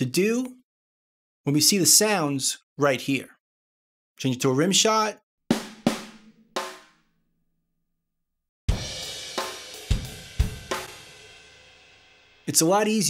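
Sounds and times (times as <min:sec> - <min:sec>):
drum hits: 0:05.5 - 0:07.0, 0:08.7 - 0:11.3.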